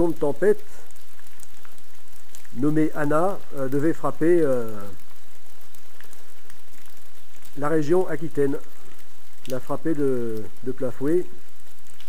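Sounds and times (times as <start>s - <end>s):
rain hissing: 0.0s - 12.0s
raindrop ticks: 0.0s - 12.0s.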